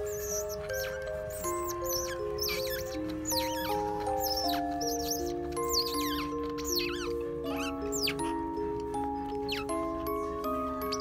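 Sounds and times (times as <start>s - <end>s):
background music of held notes: 0.0s - 11.0s
otter pups squeaking: 0.0s - 11.0s.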